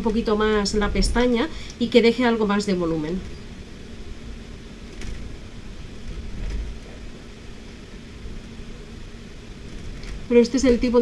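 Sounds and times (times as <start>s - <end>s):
low steady background rumble: 0.0s - 11.0s.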